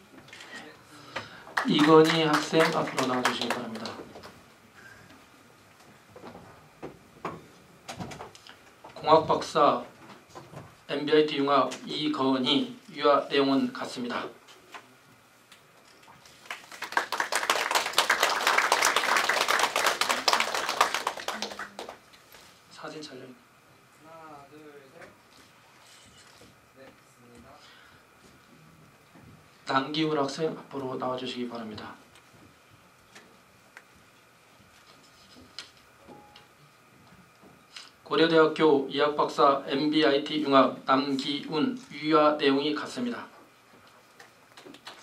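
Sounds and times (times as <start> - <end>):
group of people clapping: 1.5 - 4.4, 16.3 - 22.1, 44.6 - 45.0.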